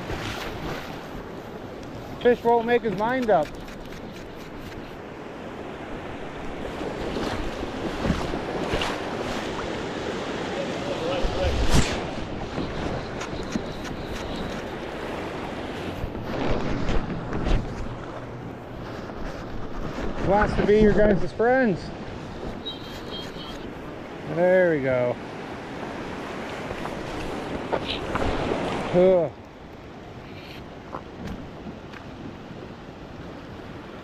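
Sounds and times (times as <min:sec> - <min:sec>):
wind on microphone: 0:10.8 - 0:24.2.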